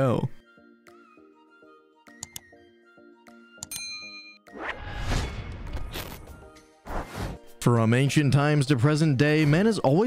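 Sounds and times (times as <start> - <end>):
soft background music: 0.0 - 10.0.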